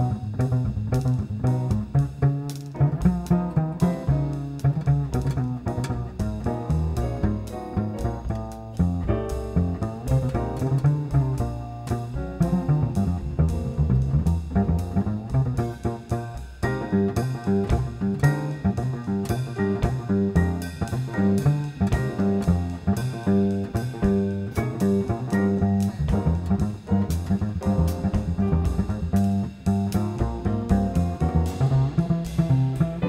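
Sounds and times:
jazz piano chords and runs: 0.0s - 33.0s
plucked double bass: 0.0s - 33.0s.

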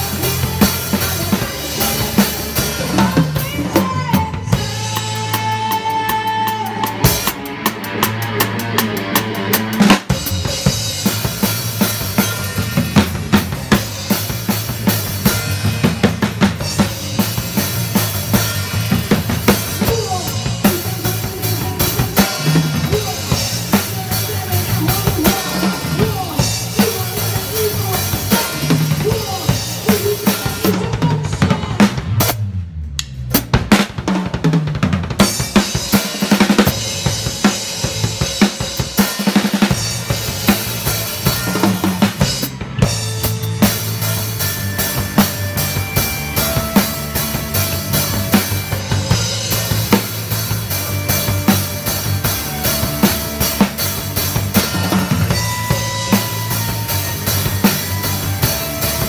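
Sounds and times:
band instruments playing: 0.0s - 32.4s, 35.2s - 59.0s
acoustic drum kit beat: 0.0s - 59.0s.

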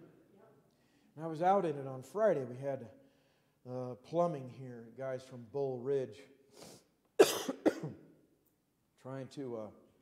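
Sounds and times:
man coughing: 7.2s - 8.1s.

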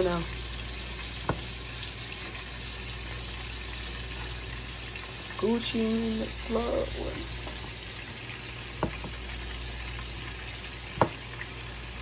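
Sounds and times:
fish sizzling in hot oil: 0.0s - 12.0s.

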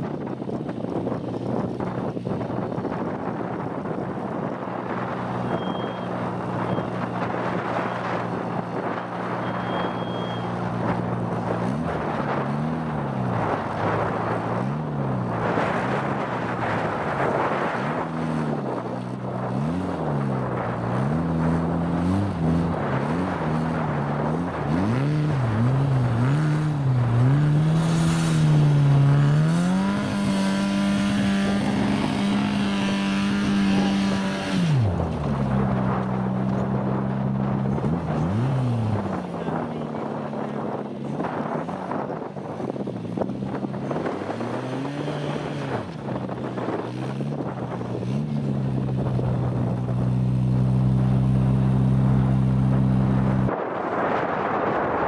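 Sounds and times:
car engine revving: 4.2s - 54.6s.

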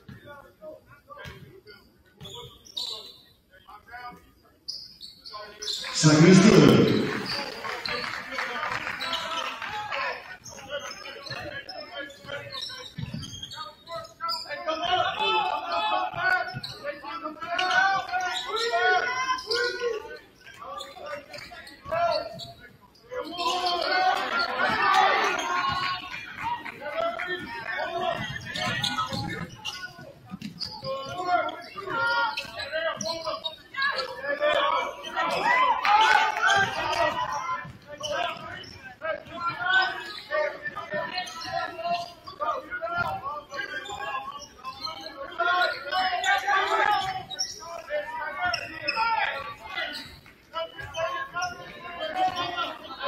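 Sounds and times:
indistinct crowd voices: 0.0s - 53.0s.

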